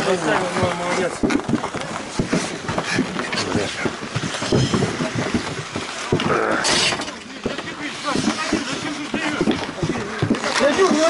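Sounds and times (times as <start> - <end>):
skates scraping ice: 0.0 - 11.0
sticks and puck clacking: 1.2 - 11.0.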